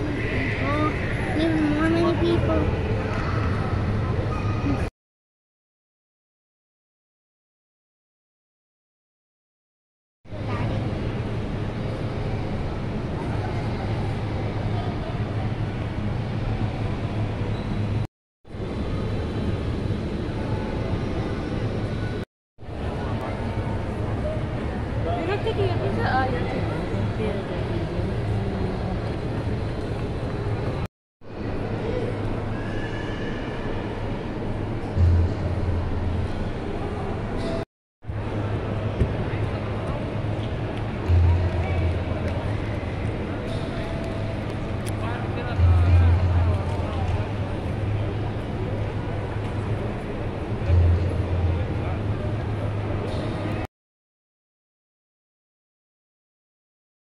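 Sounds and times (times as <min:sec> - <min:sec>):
faint indistinct voices: 0:00.0 - 0:04.9, 0:10.3 - 0:53.7
low hum: 0:10.3 - 0:53.7
low room rumble: 0:33.6 - 0:53.7.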